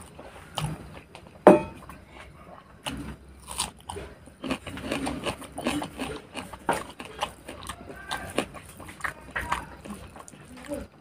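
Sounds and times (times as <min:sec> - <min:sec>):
crunching raw onion: 0:02.8 - 0:10.9.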